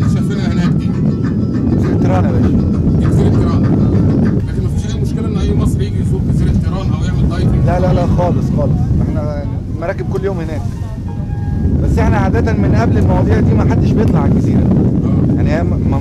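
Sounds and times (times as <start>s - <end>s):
boat engine rumble: 0.0s - 16.0s
faint voices: 0.0s - 16.0s
wind on microphone: 0.0s - 16.0s.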